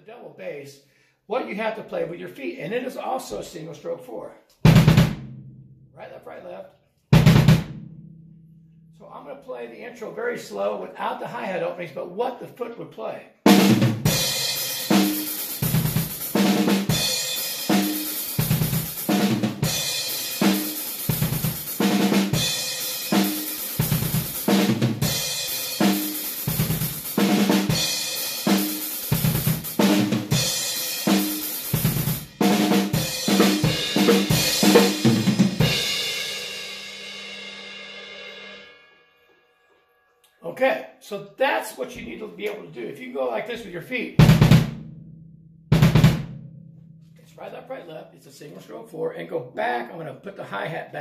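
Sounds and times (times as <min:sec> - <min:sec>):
drum fills on snare and toms: 0:04.6 - 0:05.4, 0:07.2 - 0:07.9, 0:13.5 - 0:36.1, 0:44.2 - 0:44.9, 0:45.7 - 0:46.4
double bass drum: 0:04.7 - 0:05.8, 0:07.2 - 0:08.4, 0:44.2 - 0:46.8
cymbal ringing: 0:35.7 - 0:40.4.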